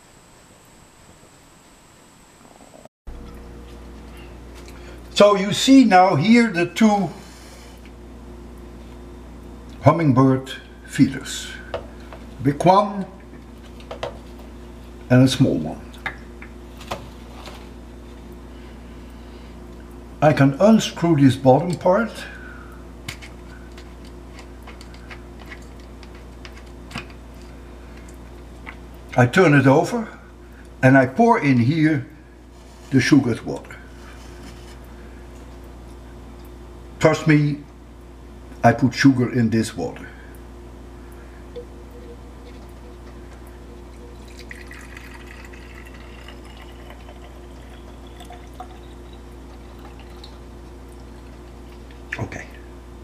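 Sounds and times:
steady low hum: 0.0 - 53.0
rising pouring tone: 41.6 - 50.4
sugar water pouring into reservoir: 41.6 - 52.0.

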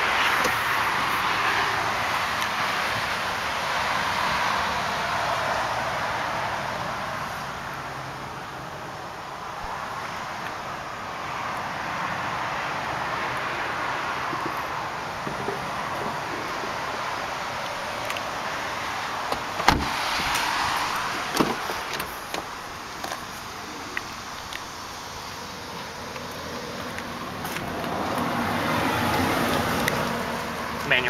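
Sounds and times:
steady hiss: 0.0 - 31.0
car door shutting: 19.2 - 23.2.

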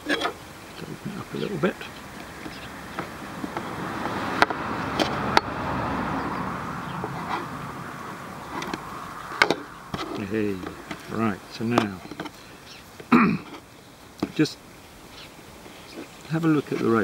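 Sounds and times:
rope rustling and rasping: 0.0 - 5.5, 6.6 - 17.0.

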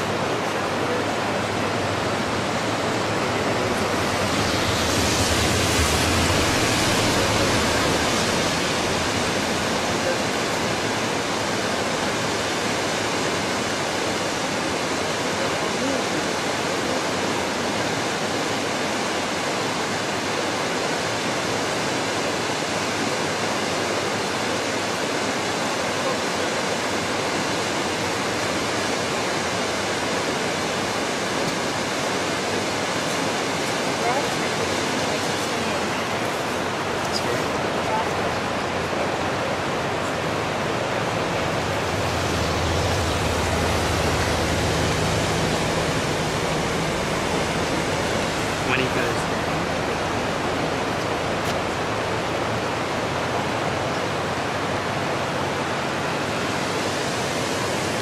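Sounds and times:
river water rushing: 0.0 - 58.0.

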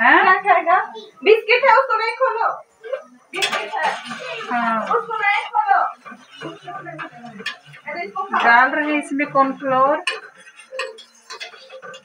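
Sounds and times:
steel utensils clattering on pot: 3.4 - 12.0.

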